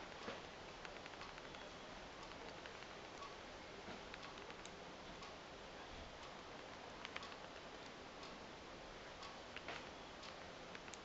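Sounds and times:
light faint clicks: 9.2 - 11.0.

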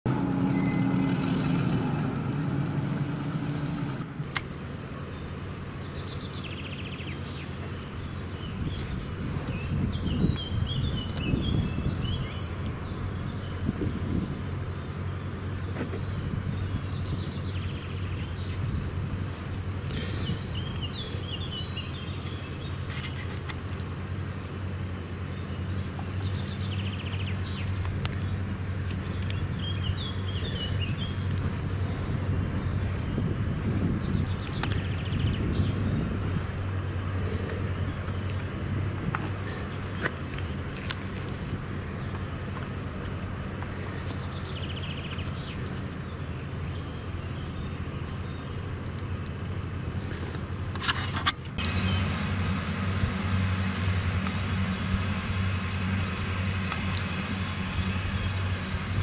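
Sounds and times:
distant tractor hum: 0.1 - 59.0
cricket trilling: 4.2 - 59.0.

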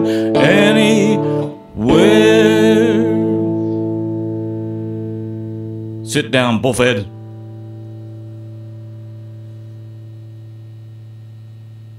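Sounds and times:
electric guitar chord ringing: 0.0 - 11.9.

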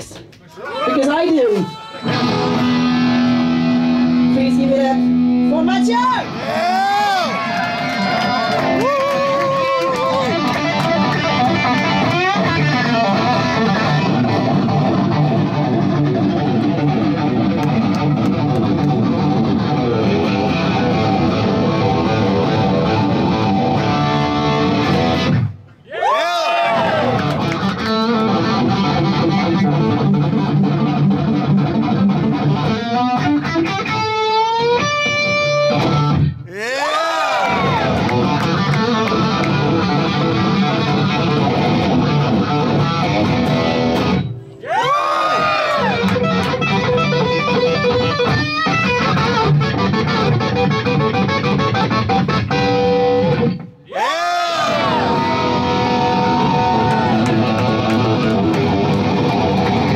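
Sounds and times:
electric guitar lead: 2.0 - 25.6, 27.0 - 36.5, 37.4 - 53.9, 54.6 - 59.9.

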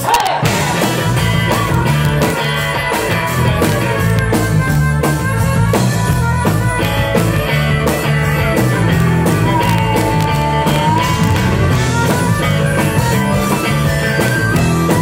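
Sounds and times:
drum kit: 0.0 - 15.0
electric guitar: 0.0 - 15.0
live rock band playing: 0.0 - 15.0.

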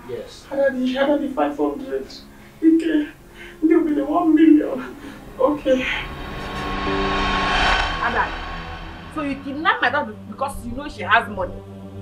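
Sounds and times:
rush of noise: 5.8 - 10.2.

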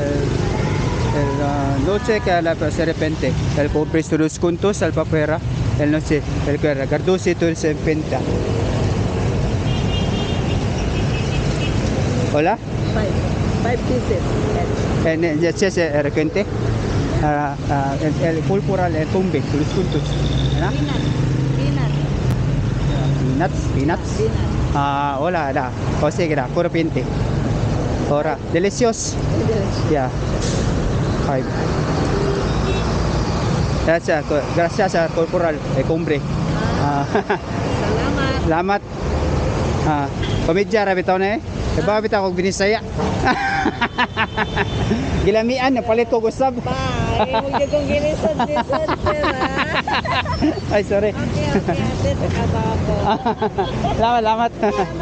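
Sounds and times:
traffic on wet road: 0.0 - 55.0
vehicle engine rumbling: 0.0 - 55.0.

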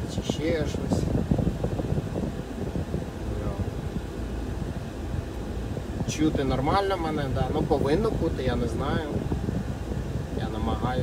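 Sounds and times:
fan-like hiss: 0.0 - 11.0
road and engine rumble: 0.0 - 11.0.

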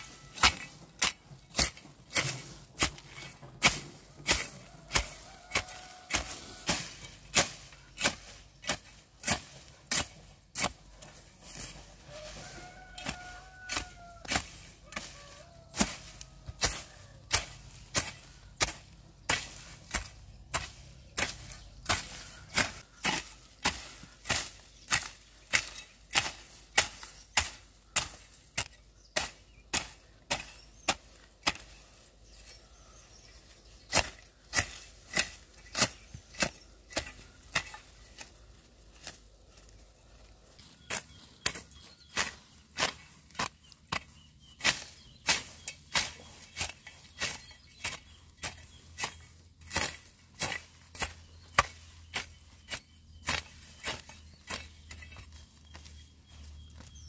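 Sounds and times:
hoe chopping into ground: 0.0 - 39.8, 40.6 - 56.0.

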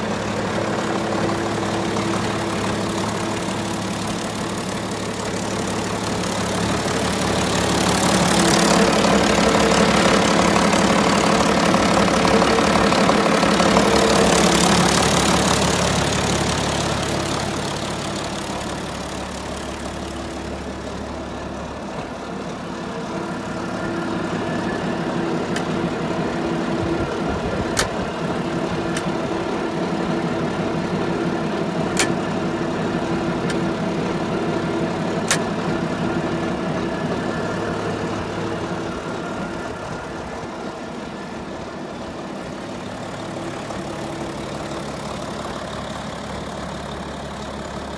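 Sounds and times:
diesel engine idling: 0.0 - 47.9.

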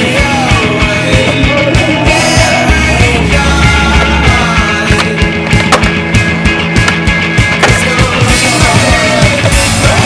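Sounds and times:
rock music: 0.0 - 10.0
skateboard clacking on ground: 5.0 - 6.0.

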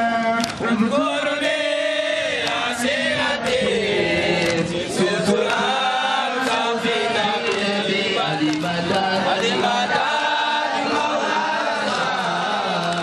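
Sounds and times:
men chanting in unison: 0.0 - 13.0
hands slapping on chests: 2.4 - 2.6, 4.4 - 4.7, 8.4 - 9.6.

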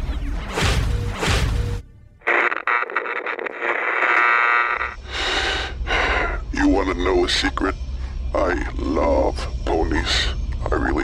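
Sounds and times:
crackling clicks: 2.2 - 5.0
tinny electronic buzz: 2.2 - 5.1.

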